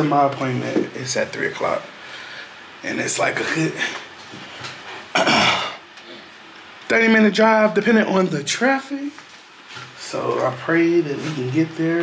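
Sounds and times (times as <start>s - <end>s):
man speaking: 2.8s - 4.0s, 10.0s - 12.0s
man clearing his throat: 5.1s - 5.8s.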